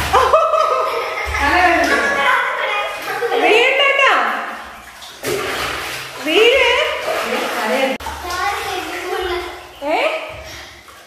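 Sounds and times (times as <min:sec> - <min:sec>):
splash into bathtub: 0:00.0 - 0:11.0
water sloshing in tub: 0:00.0 - 0:11.0.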